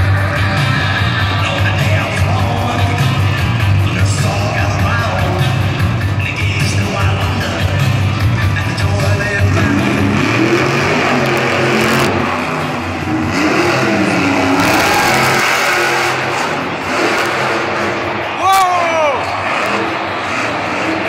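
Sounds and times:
loud music: 0.0s - 21.0s
monster truck engine revving: 0.0s - 21.0s.

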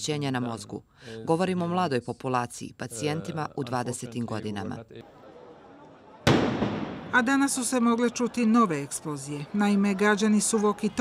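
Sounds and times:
crowd hum: 5.0s - 11.0s
loud explosion: 6.3s - 7.2s.

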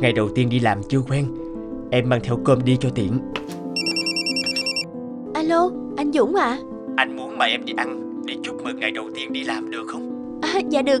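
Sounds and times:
soft background music: 0.0s - 11.0s
phone ringtone electronic trill: 3.8s - 4.8s.

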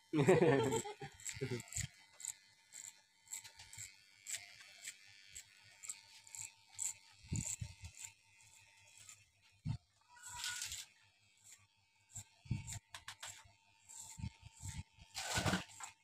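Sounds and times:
scissors snipping hair: 0.6s - 9.2s, 10.2s - 16.0s.

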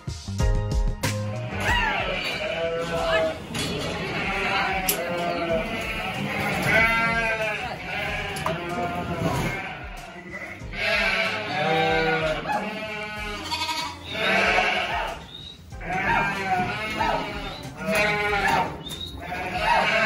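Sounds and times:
sheep bleating: 1.3s - 20.0s.

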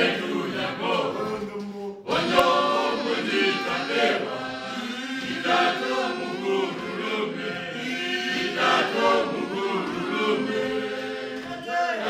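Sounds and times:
group singing in harmony: 0.0s - 12.0s.

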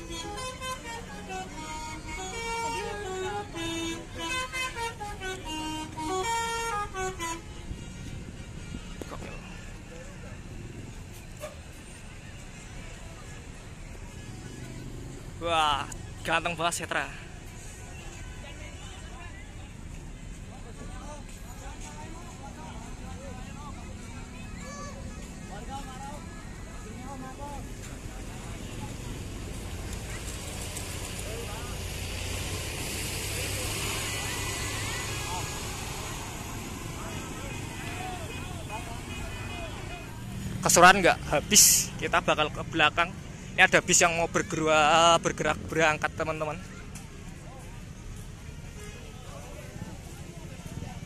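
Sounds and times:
people talking: 0.0s - 7.4s, 33.2s - 51.0s
bus and cars rumbling past: 0.0s - 51.0s
crowd voices: 0.0s - 51.0s.

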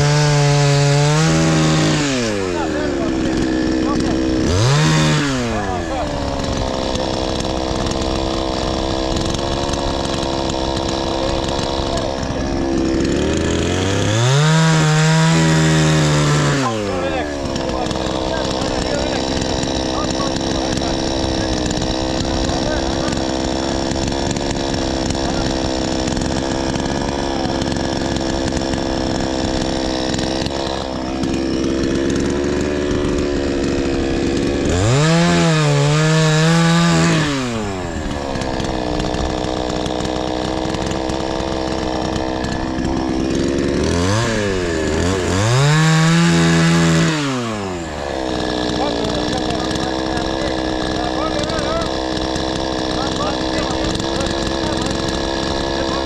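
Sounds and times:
chainsaw idling and revving: 0.0s - 56.0s.

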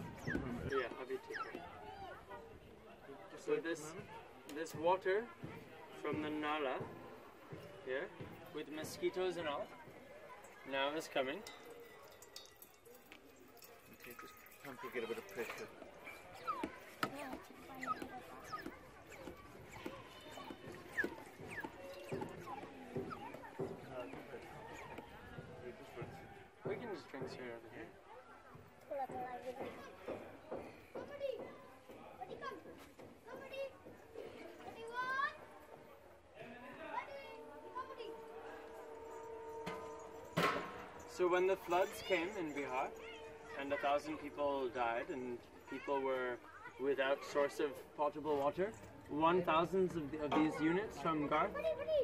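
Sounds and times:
hand pump working: 8.3s - 25.5s, 37.4s - 46.2s.

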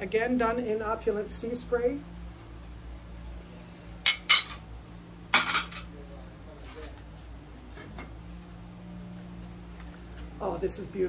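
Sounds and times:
ceramic dishes clinking: 4.0s - 4.7s, 5.3s - 5.9s.

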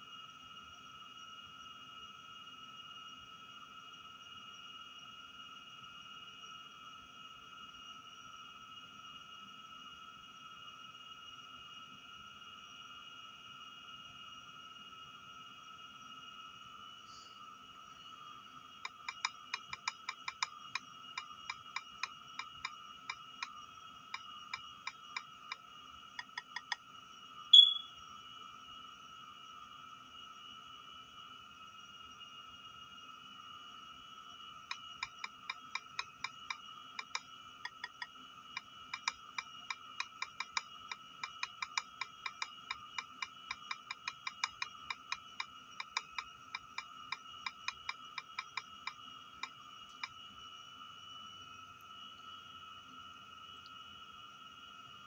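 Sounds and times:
faint high-pitched whine: 0.0s - 55.0s
short loud high chirp: 27.6s - 28.0s.

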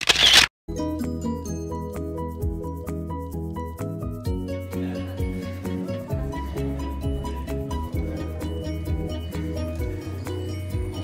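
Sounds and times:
camera shutter sound effect: 0.0s - 0.5s
music with sustained notes: 0.7s - 11.0s.

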